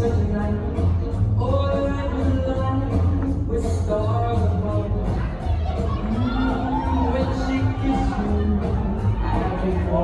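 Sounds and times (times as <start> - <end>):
latin dance music with singer: 0.0 - 10.0
spectators shouting and cheering: 4.0 - 10.0.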